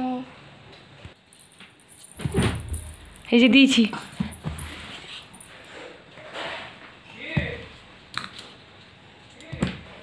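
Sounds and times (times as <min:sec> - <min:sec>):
anklets and bangles jingling: 0:01.2 - 0:05.8.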